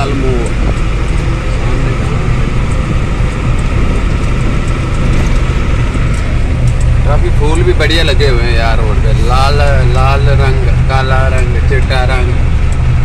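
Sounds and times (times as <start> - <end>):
road and wind noise: 0.0 - 13.0
truck engine rumbling: 0.0 - 13.0.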